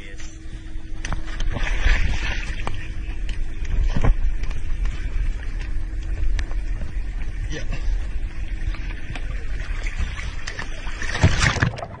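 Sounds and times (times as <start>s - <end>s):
steady low rumble: 0.0s - 12.0s
turtle splashing into water: 10.5s - 12.0s.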